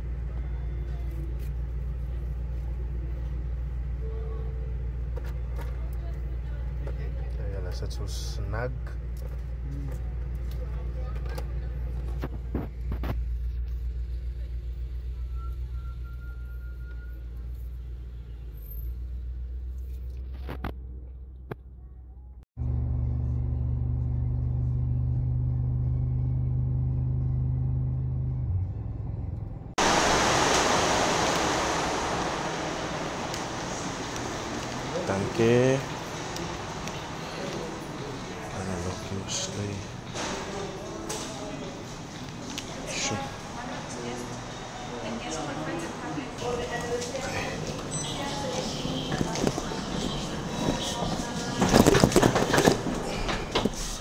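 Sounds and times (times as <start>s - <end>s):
car engine hum: 17.6s - 40.8s
car driving on highway: 22.6s - 40.7s
loud rushing noise: 29.8s - 40.7s.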